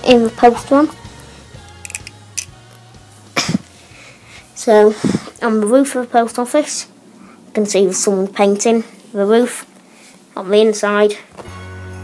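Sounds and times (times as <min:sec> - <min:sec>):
plastic toy bricks clicking: 0:01.8 - 0:02.5.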